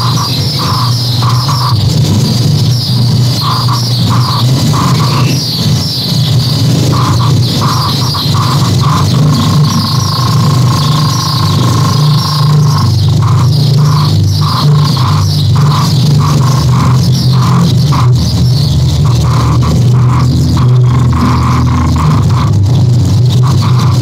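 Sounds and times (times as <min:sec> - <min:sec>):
dense low drone: 0:00.0 - 0:24.0
electronic beeps: 0:00.0 - 0:24.0
high chirping warbling sounds: 0:00.0 - 0:24.0.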